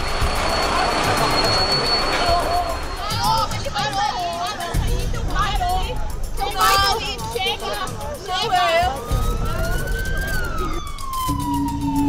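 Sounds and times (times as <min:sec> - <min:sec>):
emergency siren wailing: 0:00.0 - 0:03.8, 0:07.9 - 0:12.0
low steady music tone: 0:00.0 - 0:12.0.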